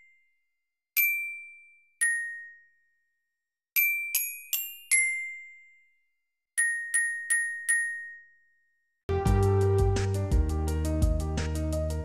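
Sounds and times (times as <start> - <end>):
glockenspiel notes ringing: 6.6 - 8.6.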